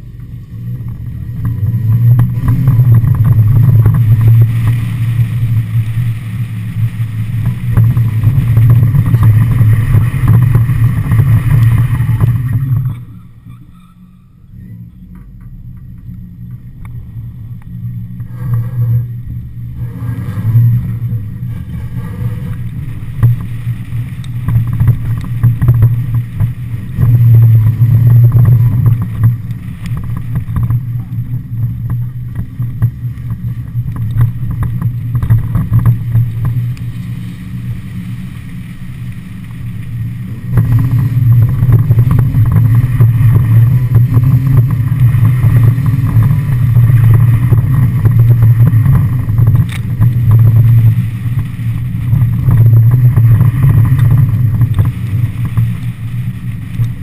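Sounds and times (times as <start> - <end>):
car engine running hard: 0.0 - 57.0.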